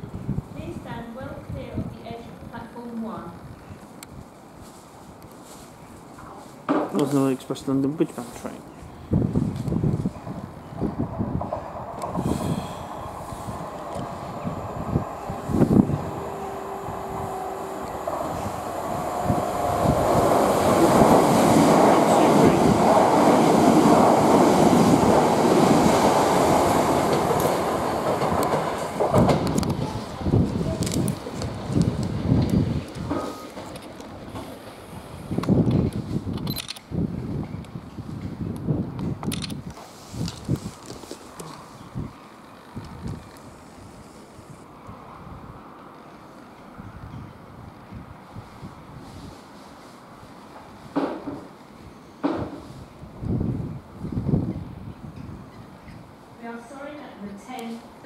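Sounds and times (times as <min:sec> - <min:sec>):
electric train passing rumble: 0:09.0 - 0:36.3, 0:41.6 - 0:58.0
train wheels clattering over joints: 0:19.9 - 0:34.8.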